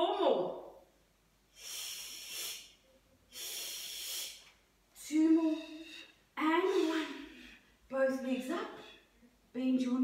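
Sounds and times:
woman exhaling forcefully: 0:01.6 - 0:02.7, 0:03.3 - 0:04.5.

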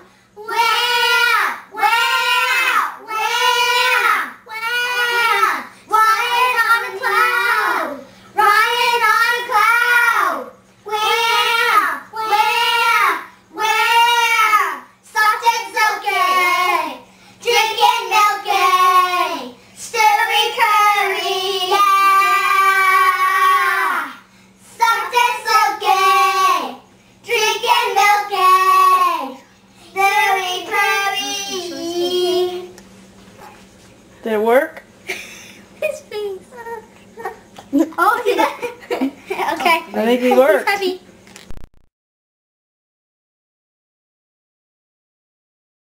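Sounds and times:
girl singing: 0:00.4 - 0:32.8.

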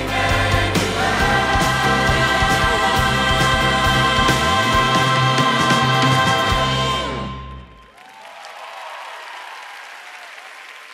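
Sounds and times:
audience applauding: 0:07.7 - 0:10.9.

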